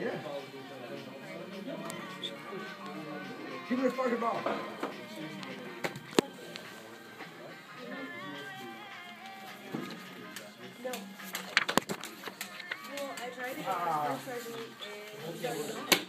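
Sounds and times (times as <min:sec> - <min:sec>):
people chatting: 0:00.0 - 0:08.9
background music: 0:00.0 - 0:16.0.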